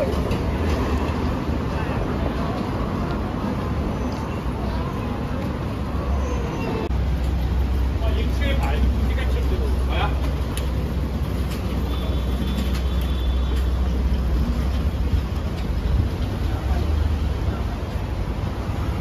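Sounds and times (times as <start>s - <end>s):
passers-by talking: 0.0s - 18.8s
city street traffic: 0.0s - 19.0s
vehicle engine rumble: 0.0s - 19.0s.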